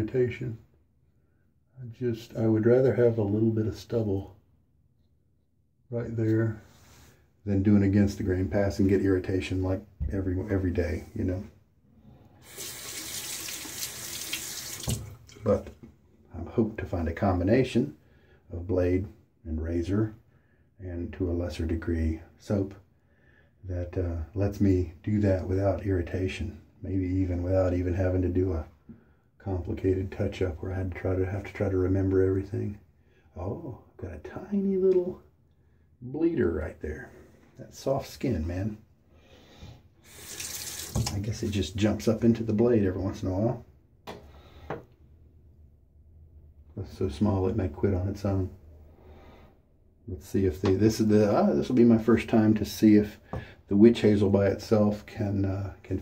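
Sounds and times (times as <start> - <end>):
tap running into sink: 12.5 - 15.4, 40.2 - 41.2.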